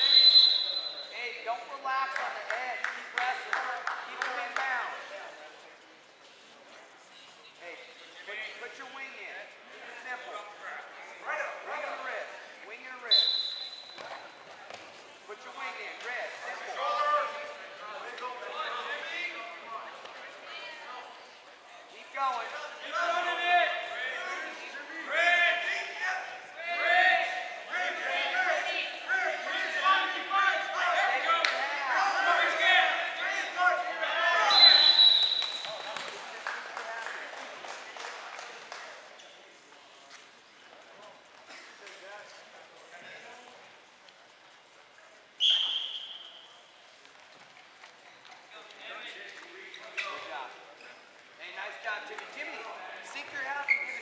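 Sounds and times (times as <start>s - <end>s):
referee's whistle: 0.0s - 1.2s, 13.1s - 14.0s, 34.4s - 36.0s, 45.4s - 46.6s.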